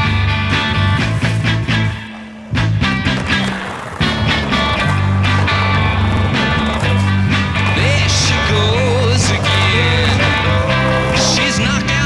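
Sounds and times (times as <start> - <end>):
sustained bass line: 0.0 - 12.0.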